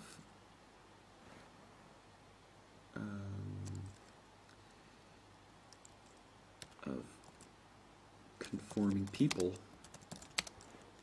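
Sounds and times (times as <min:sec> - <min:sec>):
man saying uh: 0:03.0 - 0:03.9, 0:08.4 - 0:09.6.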